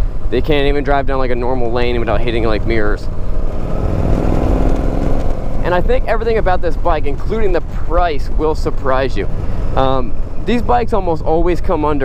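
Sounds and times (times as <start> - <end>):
motorcycle engine running: 0.0 - 12.0
wind rumbling on microphone: 0.0 - 12.0.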